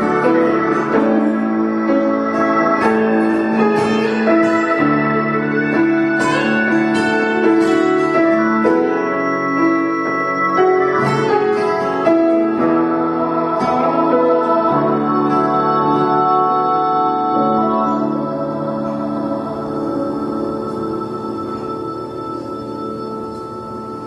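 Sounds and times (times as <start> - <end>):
grand piano chords: 0.0 - 24.0
slide guitar: 0.0 - 24.0.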